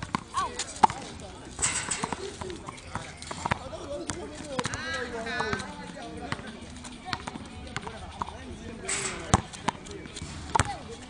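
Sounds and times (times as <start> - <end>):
tennis balls struck and bouncing: 0.0 - 11.0
voices in background: 0.0 - 11.0.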